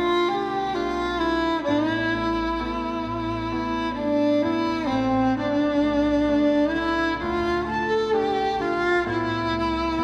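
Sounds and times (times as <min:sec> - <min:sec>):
bowed violin melody: 0:00.0 - 0:10.0.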